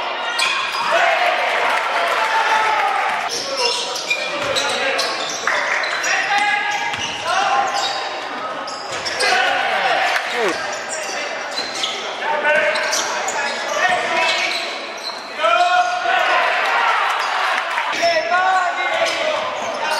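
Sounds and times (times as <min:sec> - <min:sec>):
sneakers squeaking: 0:00.2 - 0:01.2, 0:03.3 - 0:09.5, 0:10.2 - 0:15.9
basketball bouncing on wooden court: 0:06.8 - 0:07.2
people calling out: 0:09.3 - 0:10.7.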